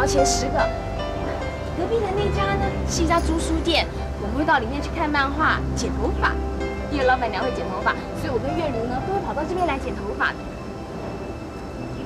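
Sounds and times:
low background rumble: 0.0 - 12.0
woman speaking: 1.8 - 10.4.

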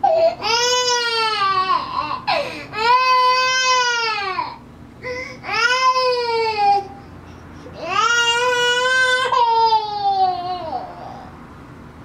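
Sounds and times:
infant crying: 0.0 - 7.0, 7.8 - 11.3.

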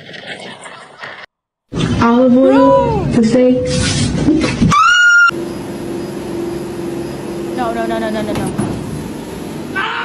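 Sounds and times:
woman screaming: 2.4 - 3.2, 4.7 - 5.3
treadmill motor humming: 5.0 - 10.0.

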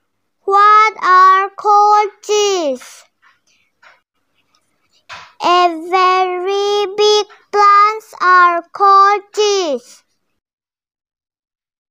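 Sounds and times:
girl reading aloud sing-song: 0.4 - 3.2, 5.3 - 10.2.

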